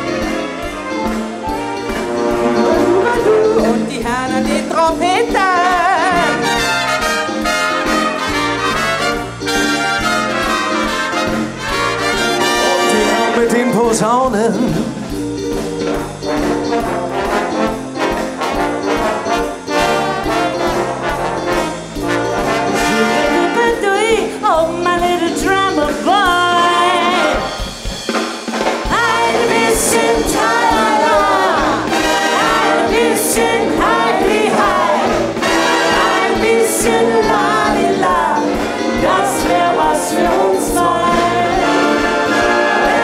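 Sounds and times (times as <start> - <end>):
brass band playing: 0.0 - 43.0.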